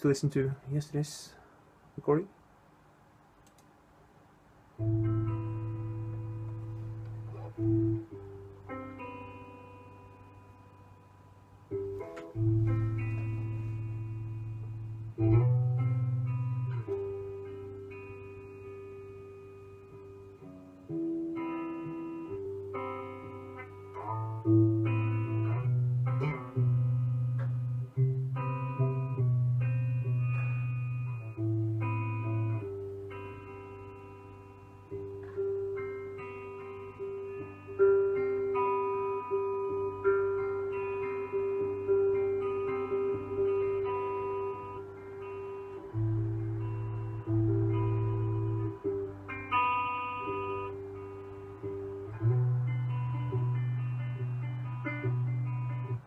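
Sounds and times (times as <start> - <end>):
electric guitar notes and chords: 4.8 - 56.0.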